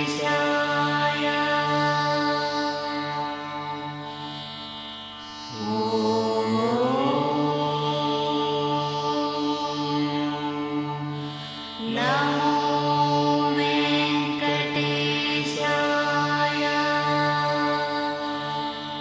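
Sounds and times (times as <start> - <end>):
devotional chanting: 0.0 - 19.0
music: 0.0 - 19.0.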